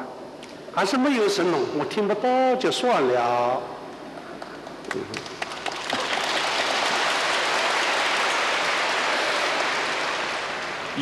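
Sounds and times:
audience applause: 4.4 - 11.0.

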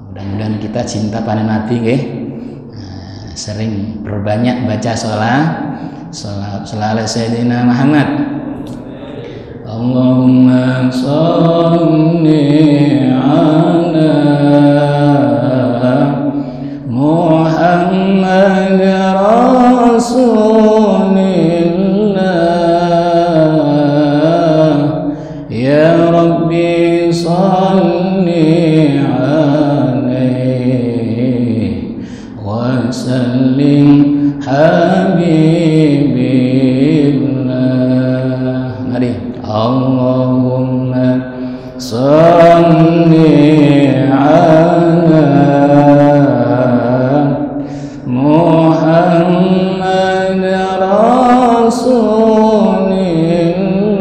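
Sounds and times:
man chanting into a microphone: 0.0 - 54.0
man breathing in: 5.6 - 6.1, 16.3 - 16.9, 25.1 - 25.5, 32.0 - 32.4, 41.3 - 41.8, 47.6 - 48.1.

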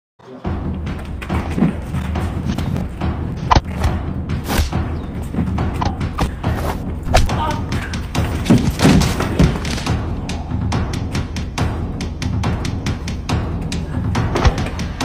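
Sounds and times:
fight music with low bass: 0.5 - 15.0
fight thuds and slaps: 1.1 - 15.0
voices: 7.1 - 8.2.

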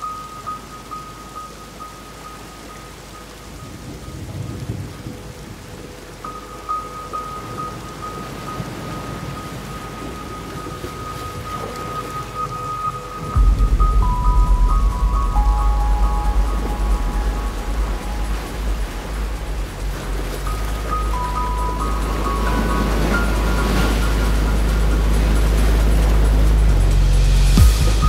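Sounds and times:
chime-like music notes: 0.0 - 28.0
steady rain falling: 0.0 - 28.0
low rumble: 13.0 - 28.0
deep bass note: 13.4 - 28.0.

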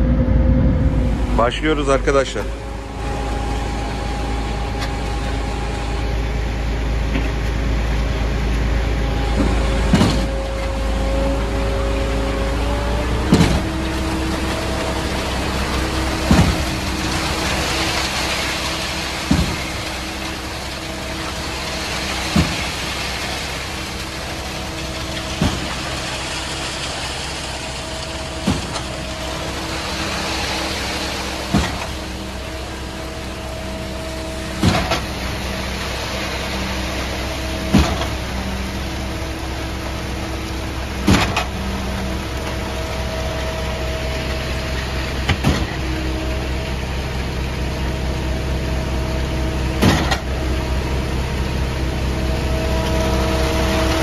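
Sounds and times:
concrete pump and diesel engines: 0.0 - 54.0.

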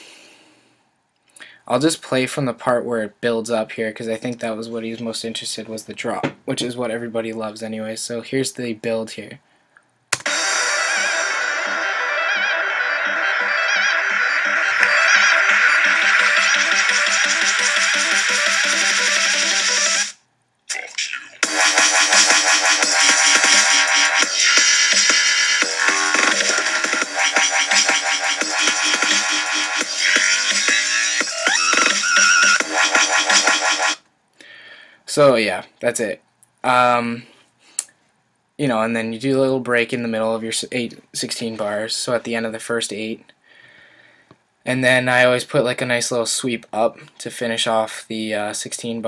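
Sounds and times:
dubstep music: 10.2 - 34.0
wobbling synth bass: 10.3 - 20.0
drums: 14.3 - 20.1, 21.4 - 34.0.

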